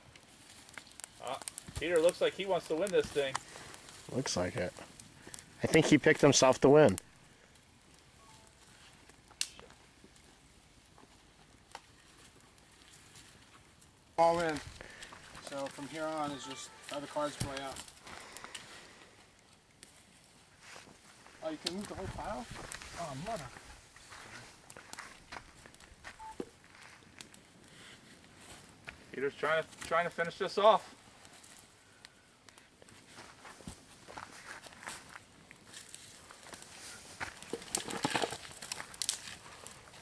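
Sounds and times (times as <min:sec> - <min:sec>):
twigs snapping and crackling fire: 0:00.0 - 0:40.0
twigs snapping: 0:00.1 - 0:05.5, 0:09.0 - 0:10.2, 0:16.9 - 0:18.7, 0:33.6 - 0:40.0.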